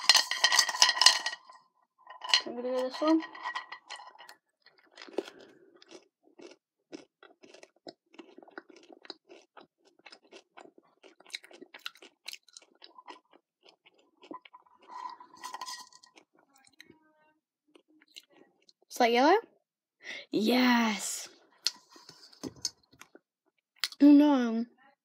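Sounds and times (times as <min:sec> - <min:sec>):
candy shell crunching between teeth: 0:04.7 - 0:14.9.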